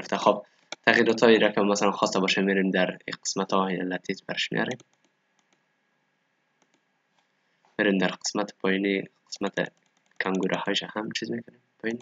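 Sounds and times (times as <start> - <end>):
faint computer mouse clicks: 6.6 - 7.3.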